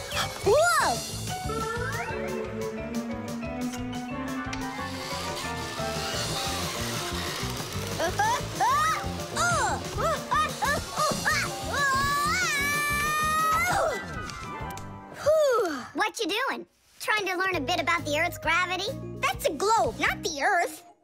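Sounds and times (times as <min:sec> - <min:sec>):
cartoon soundtrack music: 0:00.0 - 0:15.6.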